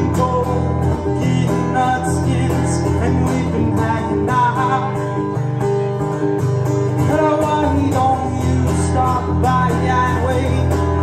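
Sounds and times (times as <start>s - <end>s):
man singing: 0.0s - 5.4s, 7.0s - 11.0s
acoustic guitar strumming: 0.0s - 11.0s.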